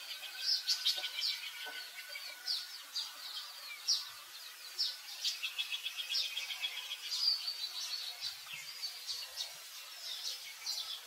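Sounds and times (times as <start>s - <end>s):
high falling bird chirps: 0.0s - 11.0s.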